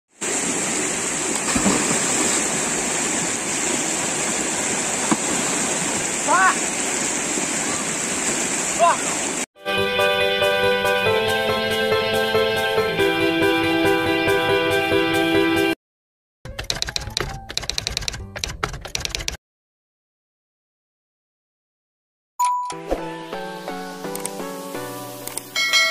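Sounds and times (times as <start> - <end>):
river rushing over rocks: 0.2 - 9.4
rapid keyboard typing: 16.5 - 19.4.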